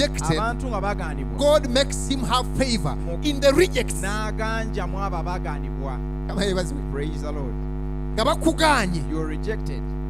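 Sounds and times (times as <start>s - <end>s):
man speaking into microphone: 0.0s - 7.6s, 8.2s - 9.9s
mains hum through sound system: 0.0s - 10.0s.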